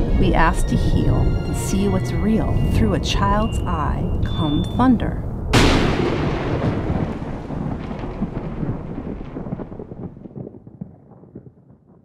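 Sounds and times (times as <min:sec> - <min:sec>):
thunder rumbling: 0:00.0 - 0:12.0.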